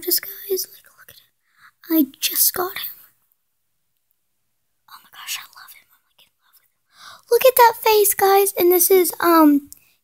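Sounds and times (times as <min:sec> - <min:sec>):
soft whispery speech: 0:00.0 - 0:03.2, 0:04.9 - 0:09.7.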